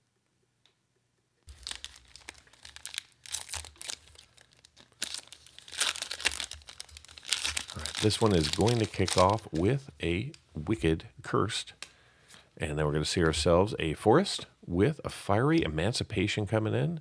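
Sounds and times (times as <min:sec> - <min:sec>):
foil wrapper tearing and crinkling: 0:01.5 - 0:09.8.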